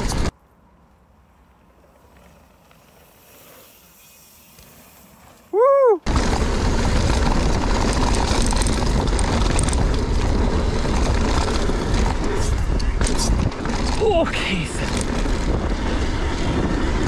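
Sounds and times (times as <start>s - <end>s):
bike tyre noise on dirt: 0.0s - 17.0s.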